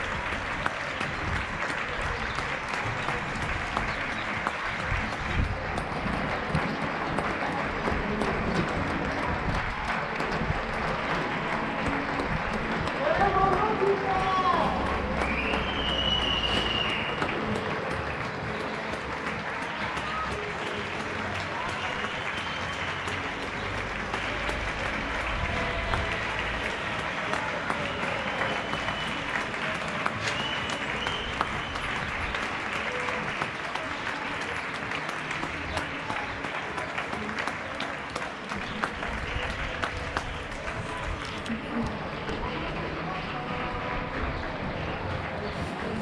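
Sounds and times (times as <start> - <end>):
crowd clapping echoing: 0.0 - 46.0.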